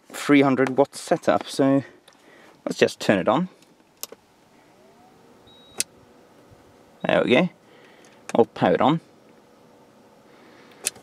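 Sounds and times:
short high beep: 5.5 - 5.8.

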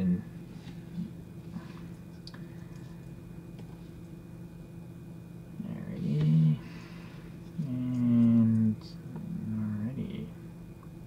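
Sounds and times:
man humming low notes: 0.0 - 1.7, 5.5 - 6.8, 7.5 - 10.4
faint background hum: 0.0 - 11.0.

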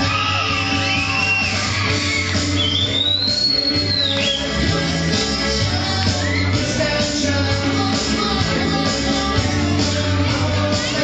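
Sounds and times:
high whistle-like sliding tone: 0.8 - 4.6.

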